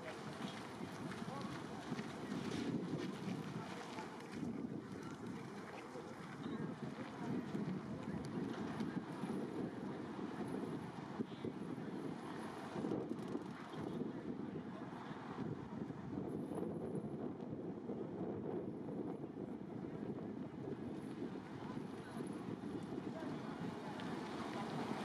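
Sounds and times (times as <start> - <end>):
wind buffeting microphone: 0.0 - 25.0
faint distant city traffic: 19.6 - 25.0.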